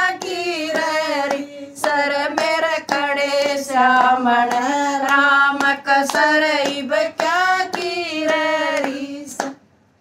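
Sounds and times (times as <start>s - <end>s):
hand claps keeping time: 0.0s - 9.6s
women singing devotional song: 0.0s - 9.6s.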